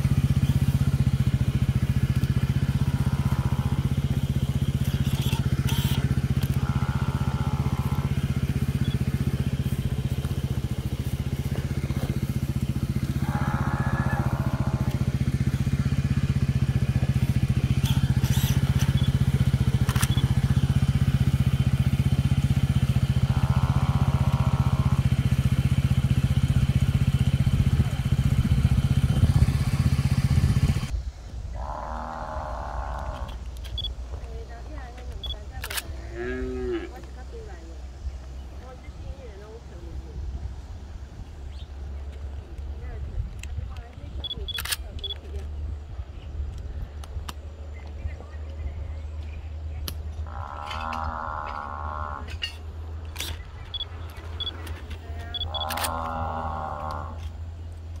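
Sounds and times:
loud low hum: 0:00.0 - 0:58.0
sharp clicks: 0:17.8 - 0:20.5, 0:33.0 - 0:33.9, 0:52.4 - 0:56.0.

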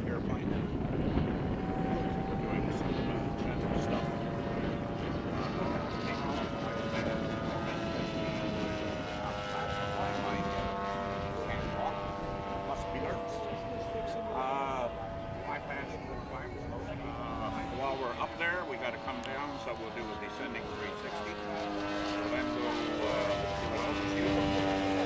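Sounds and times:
model airplane engine drone: 0:00.0 - 0:25.0.

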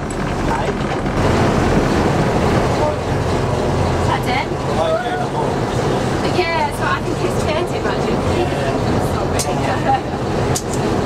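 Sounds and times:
diesel locomotive engine running: 0:00.0 - 0:11.0.

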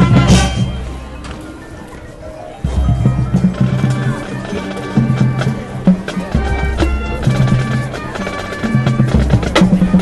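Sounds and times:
marching band playing: 0:00.0 - 0:01.6, 0:02.6 - 0:10.0.

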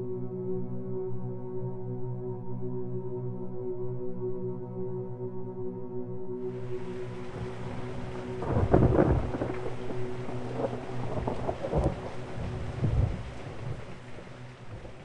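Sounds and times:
ambient music drone: 0:00.0 - 0:15.0
rain falling: 0:06.5 - 0:15.0
thunder rumbling: 0:06.5 - 0:15.0.

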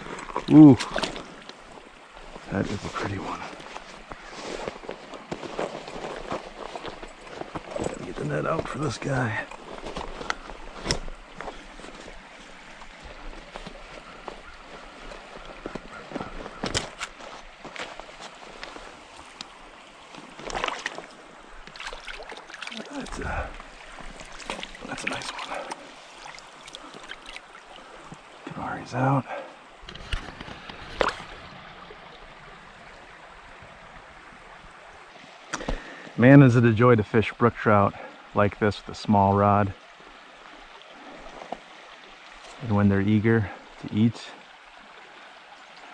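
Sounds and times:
shallow creek running: 0:00.0 - 0:45.9
splashes in water: 0:20.0 - 0:28.2, 0:30.0 - 0:32.0.

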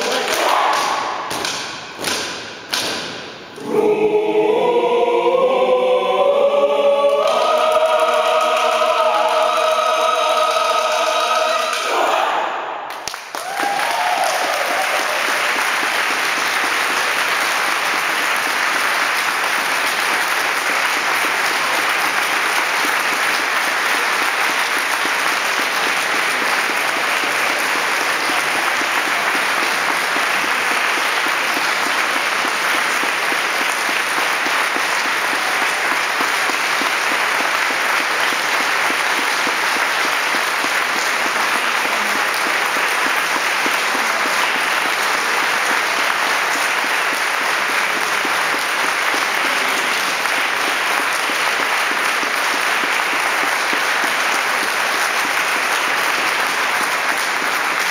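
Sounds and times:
audience applause: 0:00.0 - 0:02.1, 0:06.9 - 0:57.9
choir singing: 0:03.6 - 0:12.9.

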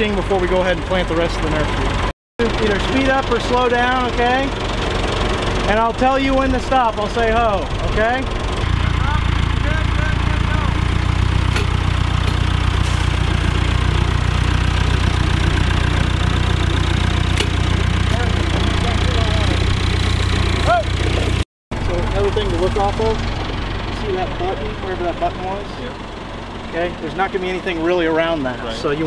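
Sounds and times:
tractor diesel engine running: 0:00.0 - 0:29.0.

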